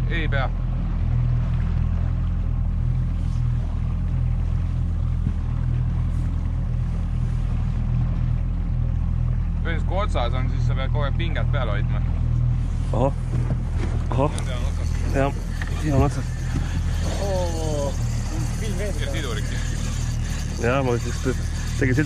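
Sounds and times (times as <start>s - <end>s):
boat engine humming: 0.0s - 22.0s.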